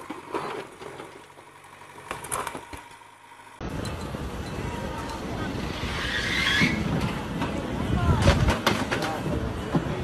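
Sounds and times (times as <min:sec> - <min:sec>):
street noise: 0:00.0 - 0:10.0
harsh metal scraping: 0:05.6 - 0:07.6.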